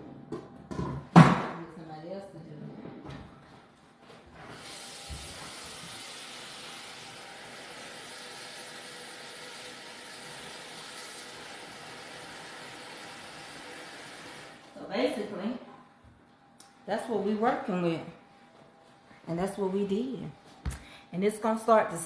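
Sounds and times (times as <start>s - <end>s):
sauce sizzling in a pot: 4.6s - 14.6s.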